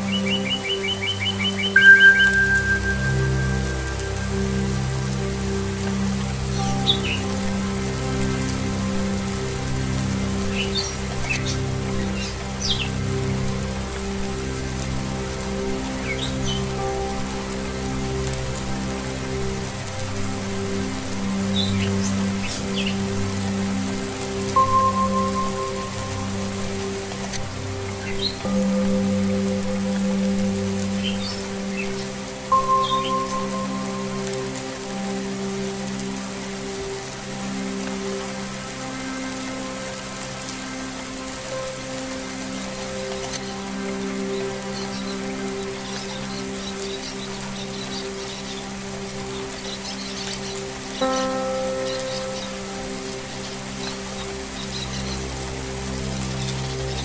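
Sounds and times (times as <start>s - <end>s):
singing bowl music: 0.0s - 57.0s
steady rain: 0.0s - 57.0s
bird chirps: 0.2s - 4.0s
higher ringing tone: 1.8s - 4.6s.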